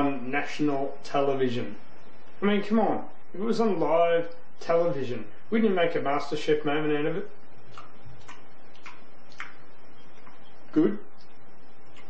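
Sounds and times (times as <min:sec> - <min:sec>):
mouth clicks while chewing: 0:07.6 - 0:09.6, 0:11.2 - 0:12.0.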